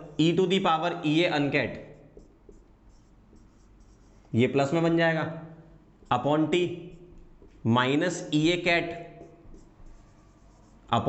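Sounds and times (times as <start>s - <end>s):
marker writing on whiteboard: 0.0s - 5.0s, 6.0s - 11.0s.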